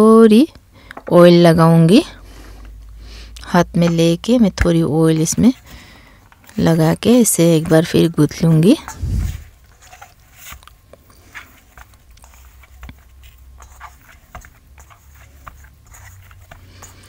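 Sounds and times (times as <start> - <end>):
hands kneading dough: 3.3 - 17.0.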